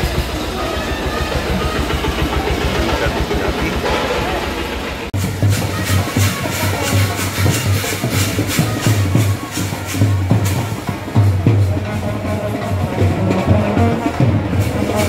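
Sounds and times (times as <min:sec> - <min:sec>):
tractor diesel engine running: 0:00.0 - 0:05.2
brass band playing: 0:00.0 - 0:15.0
crowd noise: 0:00.0 - 0:15.0.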